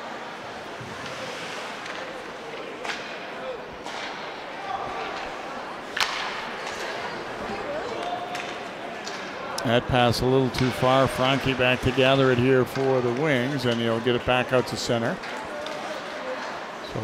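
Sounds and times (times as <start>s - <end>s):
murmur of voices: 0.0s - 17.0s
hockey stick hitting puck: 0.8s - 4.3s, 5.9s - 7.1s, 7.9s - 9.4s, 10.5s - 13.9s.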